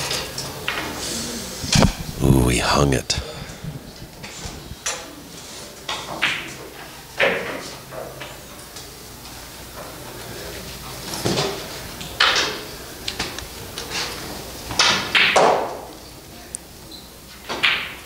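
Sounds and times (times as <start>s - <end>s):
faint voices: 1.0s - 5.6s.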